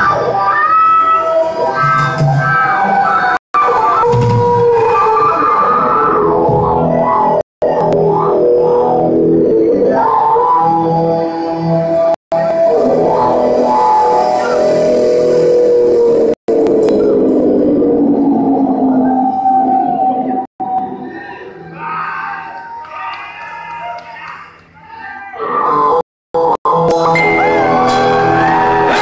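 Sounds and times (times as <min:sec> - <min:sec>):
rock band playing live: 0:26.7 - 0:29.0.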